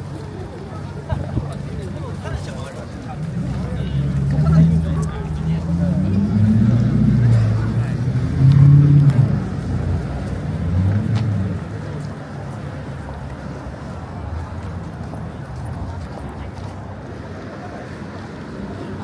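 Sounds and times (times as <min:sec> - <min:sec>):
passers-by's voices: 0:00.0 - 0:19.0
traffic hum: 0:00.0 - 0:19.0
vehicle engine: 0:00.0 - 0:19.0.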